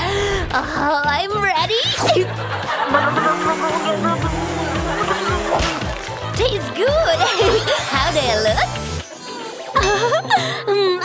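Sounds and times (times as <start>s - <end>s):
background music with bass: 0.0s - 9.0s
person's voice: 6.3s - 8.7s.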